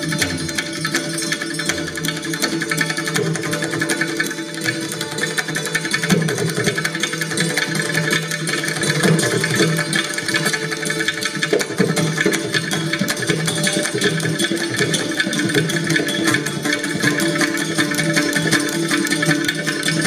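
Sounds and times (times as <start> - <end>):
santoor fast run: 0.0 - 20.0.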